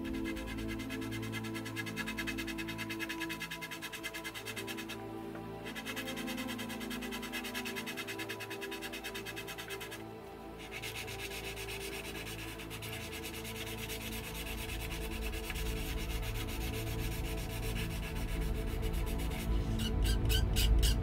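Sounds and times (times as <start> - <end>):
hand sanding plastic: 0.0 - 5.0, 5.6 - 21.0
background music: 0.0 - 21.0.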